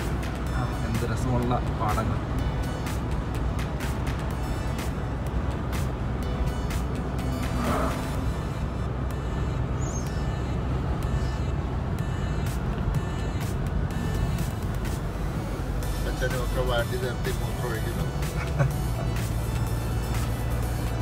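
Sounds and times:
music with steady beat: 0:00.0 - 0:09.5, 0:12.0 - 0:21.0
road and engine rumble in car: 0:00.0 - 0:21.0.

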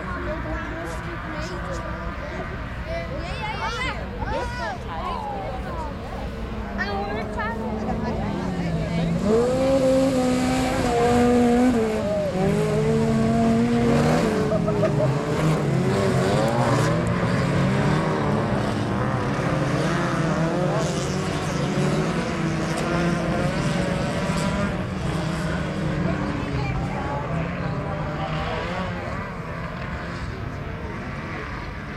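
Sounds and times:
car engines revving: 0:00.0 - 0:31.9.

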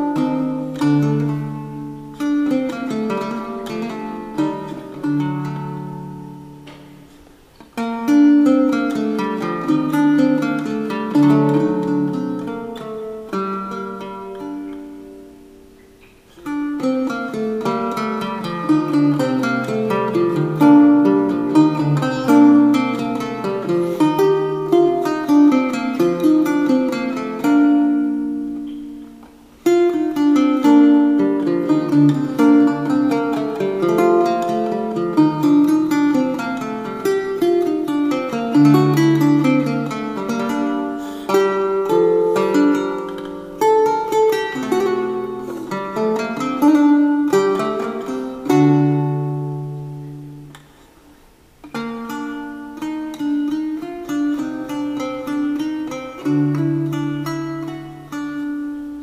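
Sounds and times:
solo guitar plucked: 0:00.0 - 0:59.0.

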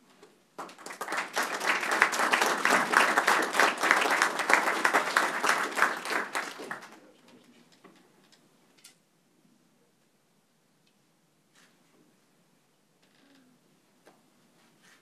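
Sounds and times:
audience clapping: 0:00.6 - 0:07.1.

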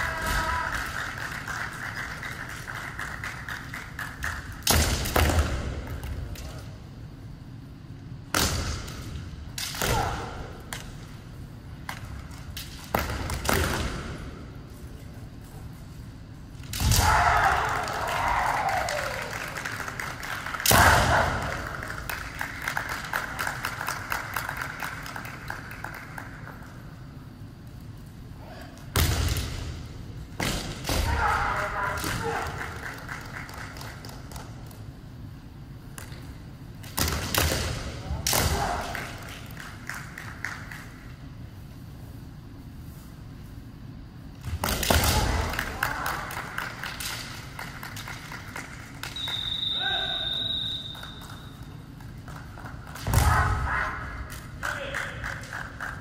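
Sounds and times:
long drawn-out shout: 0:00.0 - 0:01.1, 0:16.9 - 0:19.5.

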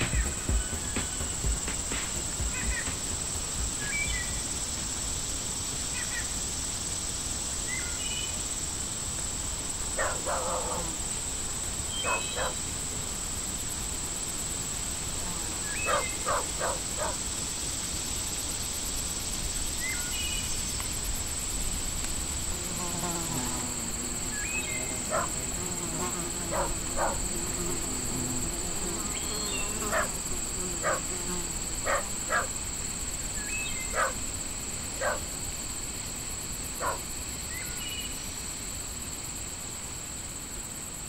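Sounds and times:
high-pitched insect buzzing: 0:00.0 - 0:05.2, 0:22.3 - 0:34.2.

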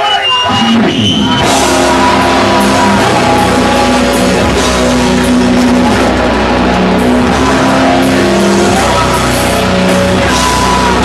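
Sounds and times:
drums: 0:00.0 - 0:11.0
distorted guitar and bass chords: 0:00.4 - 0:11.0.

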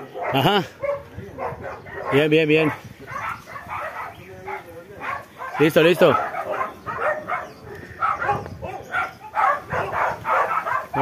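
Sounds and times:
dog barking: 0:00.0 - 0:11.0.

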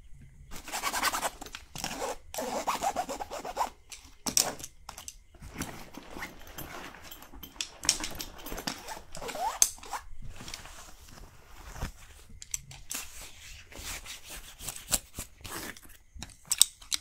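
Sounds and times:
scratching on fabric backpack: 0:00.5 - 0:03.8, 0:05.4 - 0:12.4.

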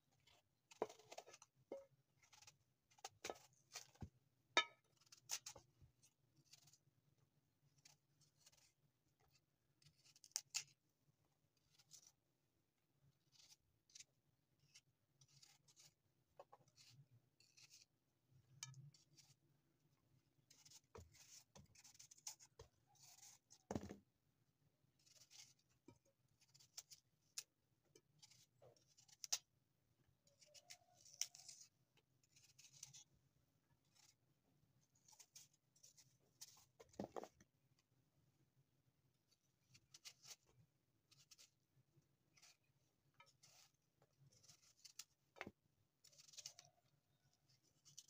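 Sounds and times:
knife scraping apple skin: 0:00.2 - 0:01.6, 0:02.2 - 0:04.0, 0:04.6 - 0:07.0, 0:07.7 - 0:10.8, 0:11.5 - 0:12.2, 0:13.1 - 0:19.5, 0:20.4 - 0:23.7, 0:25.0 - 0:29.5, 0:30.3 - 0:33.2, 0:33.8 - 0:34.2, 0:39.6 - 0:45.3, 0:46.0 - 0:48.0.

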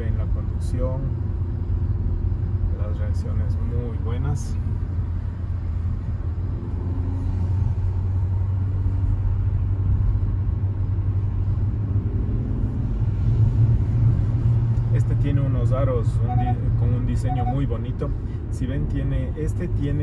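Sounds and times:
car engine and road rumble: 0:00.0 - 0:20.0.

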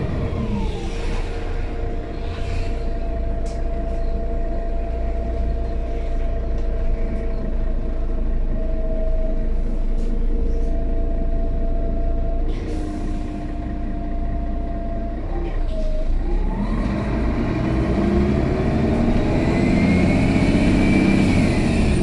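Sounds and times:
bus diesel engine revving: 0:00.0 - 0:11.2, 0:12.5 - 0:22.0
engine whine: 0:00.0 - 0:22.0.

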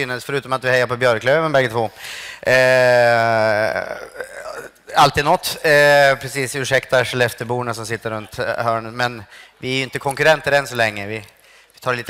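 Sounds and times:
faint noise: 0:00.0 - 0:12.0.

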